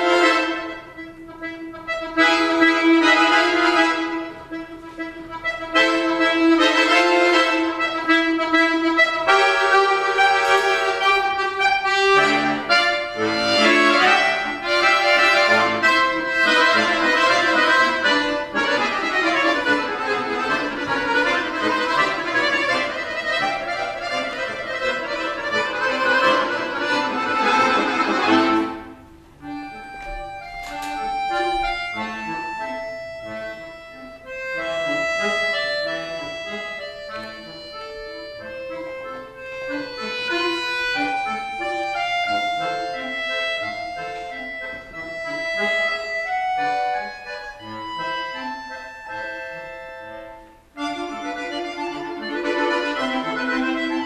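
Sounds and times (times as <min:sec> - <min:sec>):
accordion playing: 0:00.0 - 0:54.0.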